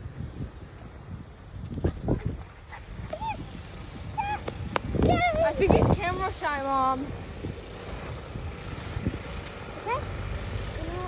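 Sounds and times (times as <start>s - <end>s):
small dog yipping: 4.1s - 4.6s.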